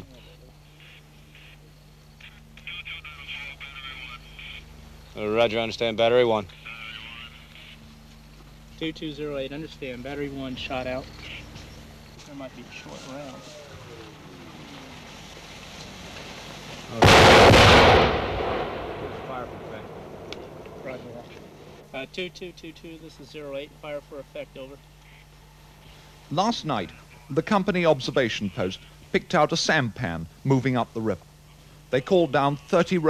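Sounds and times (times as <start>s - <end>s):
faint tinny radio voice: 0.0s - 8.0s
faint hiss: 0.0s - 33.0s
steady low hum: 0.0s - 33.0s.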